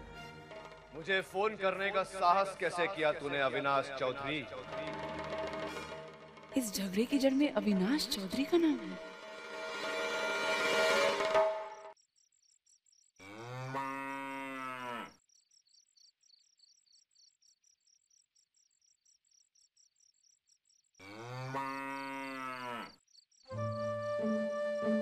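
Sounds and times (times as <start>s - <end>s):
crickets chirping: 11.2s - 22.3s, 22.9s - 24.0s
cow mooing: 13.2s - 15.2s, 21.0s - 23.0s.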